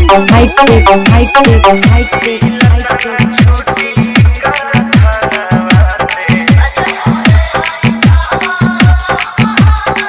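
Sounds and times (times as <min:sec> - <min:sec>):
booming bass drum: 0:00.0 - 0:09.8
hard bass dance music: 0:00.0 - 0:10.0.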